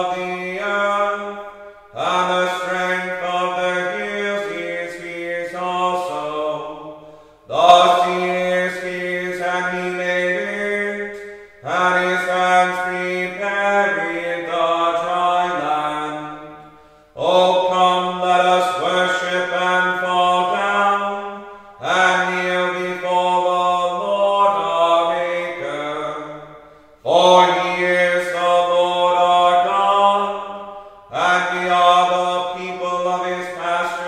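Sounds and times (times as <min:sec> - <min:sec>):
plainsong chant: 0:00.0 - 0:34.0.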